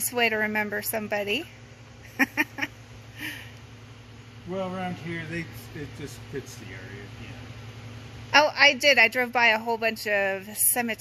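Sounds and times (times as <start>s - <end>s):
person laughing: 2.1s - 3.5s.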